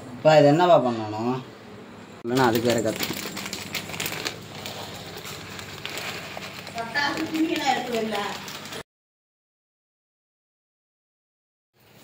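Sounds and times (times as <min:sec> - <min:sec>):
packaging crinkling and rustling: 0:02.3 - 0:08.8.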